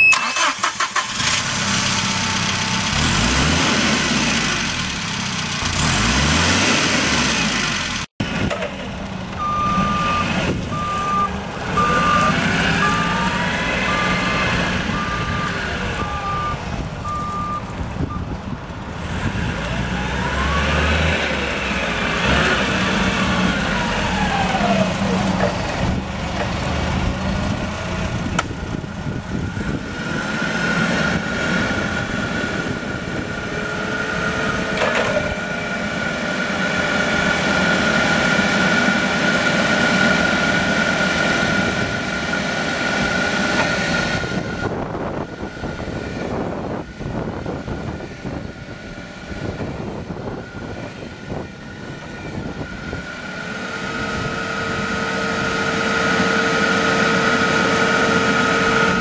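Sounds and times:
warning beeper: 0:00.0 - 0:00.6, 0:09.4 - 0:18.2
forklift engine revving: 0:00.0 - 0:59.0.

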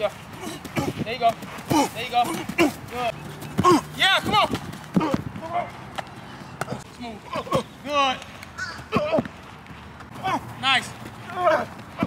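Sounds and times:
quick footfalls on hard dirt: 0:00.0 - 0:06.8.

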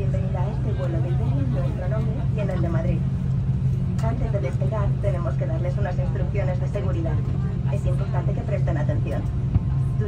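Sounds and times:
people talking: 0:00.0 - 0:03.1, 0:04.0 - 0:10.0
steady low cabin hum: 0:00.0 - 0:10.0.

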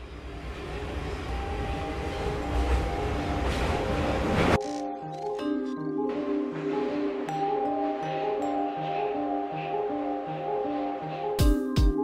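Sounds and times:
subway train rumbling and hissing: 0:00.0 - 0:04.6, 0:05.6 - 0:12.0.

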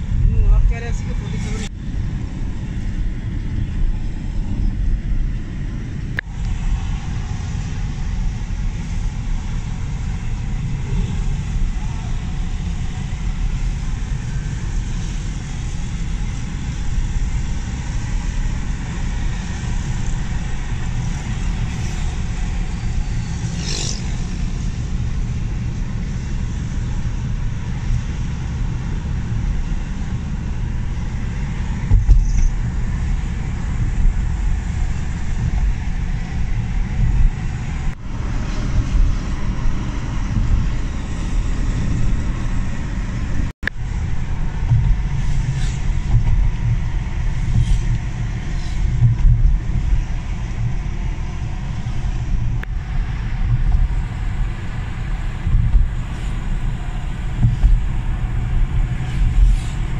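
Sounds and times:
car road and engine rumble: 0:00.0 - 0:59.9.

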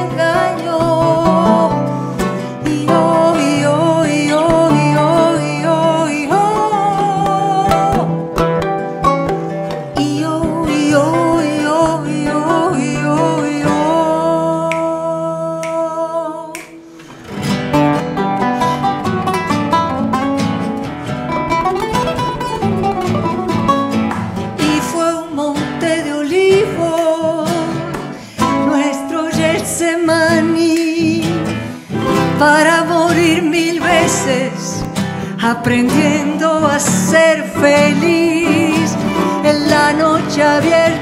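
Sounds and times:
nylon-string acoustic guitar: 0:00.0 - 0:41.0
charango playing: 0:05.7 - 0:13.4, 0:16.5 - 0:25.0.

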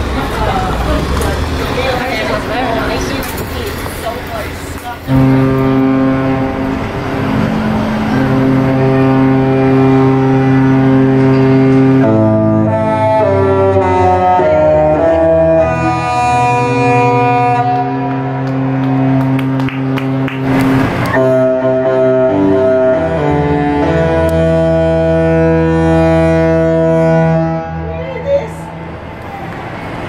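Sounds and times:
ship horn playing a tune: 0:05.0 - 0:29.0
ship horn blasts: 0:05.0 - 0:29.6.

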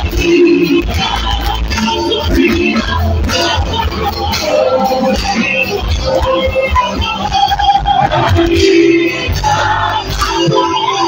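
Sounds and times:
drum and bass beat: 0:00.0 - 0:11.0.

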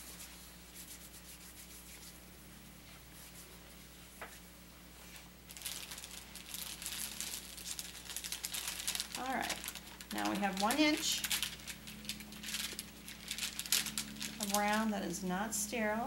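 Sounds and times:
paper wrapper crinkling: 0:05.1 - 0:15.1.

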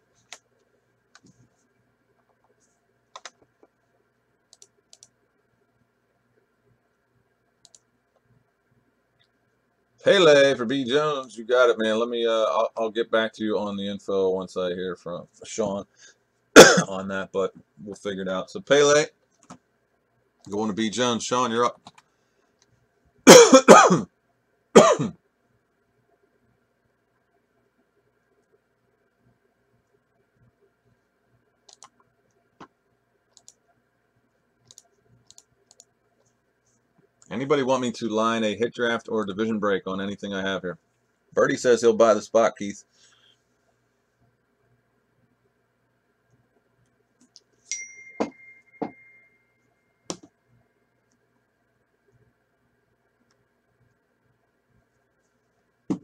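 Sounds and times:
man coughing: 0:16.6 - 0:17.0, 0:23.3 - 0:24.1, 0:24.8 - 0:25.2
bright ringing ding: 0:47.7 - 0:50.0.

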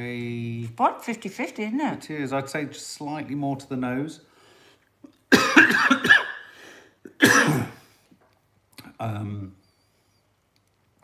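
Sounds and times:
person coughing: 0:05.3 - 0:07.9.

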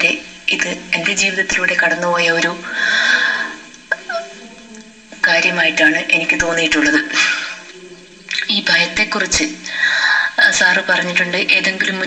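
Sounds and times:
breathy hiss: 0:00.0 - 0:12.0
person speaking: 0:00.0 - 0:12.0.

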